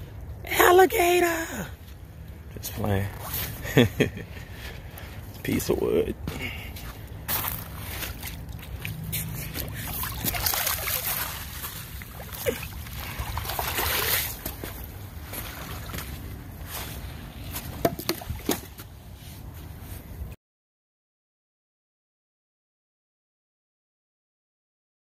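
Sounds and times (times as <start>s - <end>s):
steady low rumble: 1.6s - 20.4s
small waves lapping: 6.3s - 20.0s.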